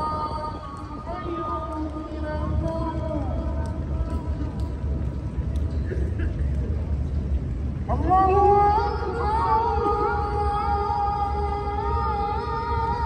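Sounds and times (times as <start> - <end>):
steady low rumble: 0.0 - 13.0.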